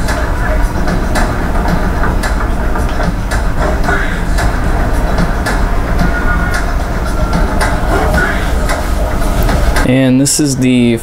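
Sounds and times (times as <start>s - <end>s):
low rumble with sharp clacks: 0.0s - 10.6s.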